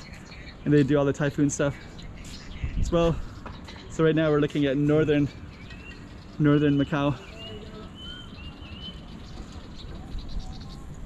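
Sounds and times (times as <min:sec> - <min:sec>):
high-pitched bird calls: 0:00.0 - 0:11.0.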